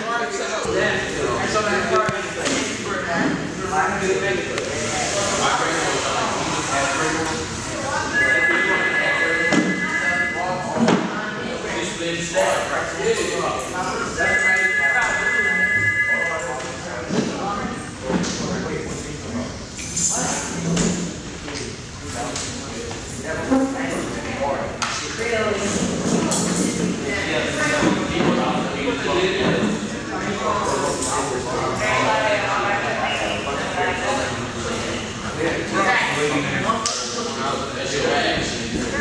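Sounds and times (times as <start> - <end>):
indistinct voices in hallway: 0.0 - 39.0
high two-note tone: 8.1 - 10.6, 14.2 - 16.5.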